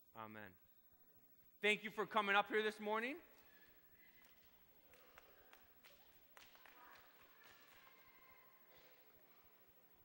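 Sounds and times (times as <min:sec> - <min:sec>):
children's footsteps: 0:03.3 - 0:09.9.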